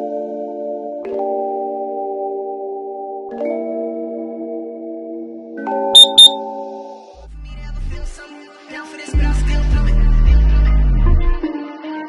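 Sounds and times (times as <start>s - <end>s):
high electronic beeps: 6.0s - 6.4s.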